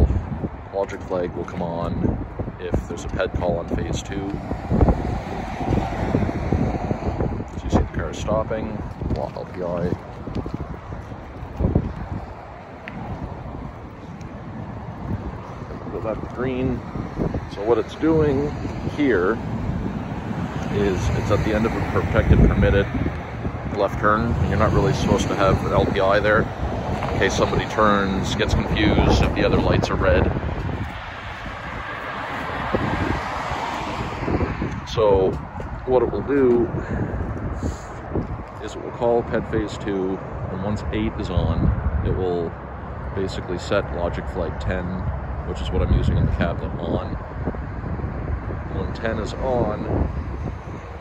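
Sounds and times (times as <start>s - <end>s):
wind buffeting microphone: 0.0s - 51.0s
car driving past: 4.4s - 7.4s, 24.3s - 34.8s.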